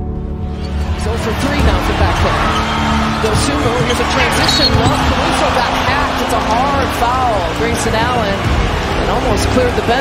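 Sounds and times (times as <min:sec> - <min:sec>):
crowd noise: 0:00.6 - 0:10.0
sneakers squeaking on hardwood: 0:02.4 - 0:05.2
basketball bouncing: 0:03.3 - 0:05.3
referee's whistle: 0:04.4 - 0:05.0.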